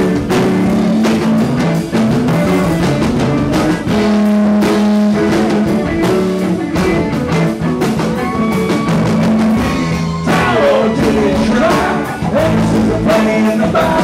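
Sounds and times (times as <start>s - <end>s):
drum kit: 0.0s - 14.0s
electric guitars: 0.0s - 14.0s.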